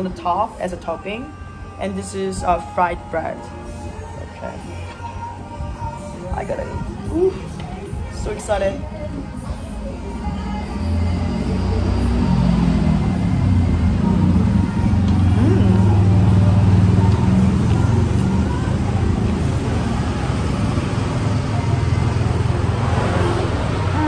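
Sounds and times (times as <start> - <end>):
low engine rumble: 3.3 - 24.0.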